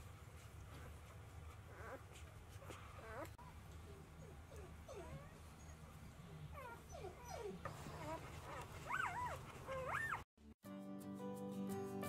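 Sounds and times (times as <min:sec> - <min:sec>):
puppies whimpering: 0:01.7 - 0:10.3.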